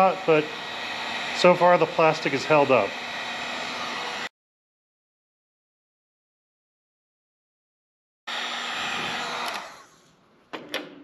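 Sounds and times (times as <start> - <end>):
heat gun blowing: 0.0 - 4.3, 8.3 - 10.2.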